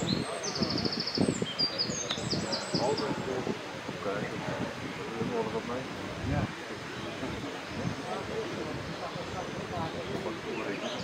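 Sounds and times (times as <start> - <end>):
songbird chirping and trilling: 0.0 - 3.3, 6.9 - 11.0.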